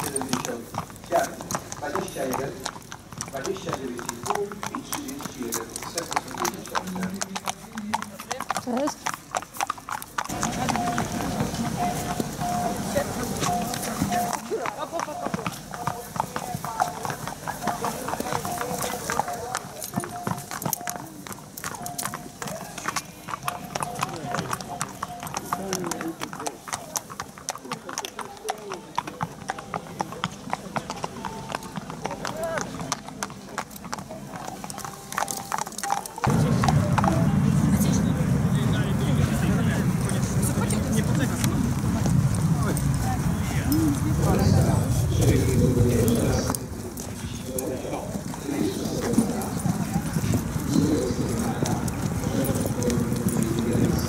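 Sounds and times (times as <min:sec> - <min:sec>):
hooves clip-clopping on hard ground: 0:00.0 - 0:54.0.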